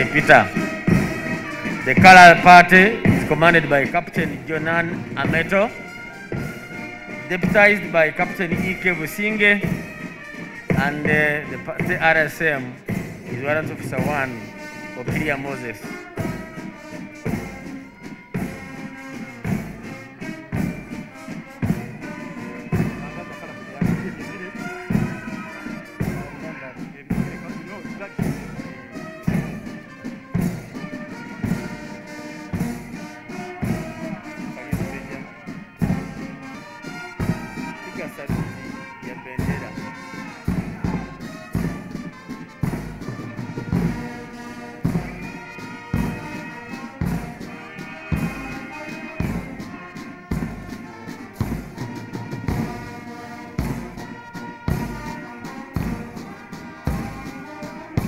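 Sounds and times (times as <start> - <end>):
brass band playing a march: 0.0 - 58.0.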